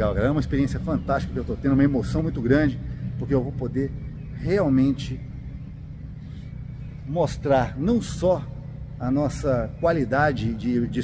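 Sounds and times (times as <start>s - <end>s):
low background rumble and hum: 0.0s - 11.0s.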